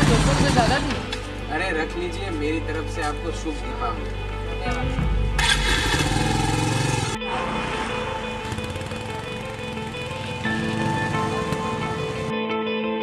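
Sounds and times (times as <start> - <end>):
motorcycle engine running: 0.0 - 1.2, 4.8 - 12.4
music of sustained tones: 0.0 - 13.0.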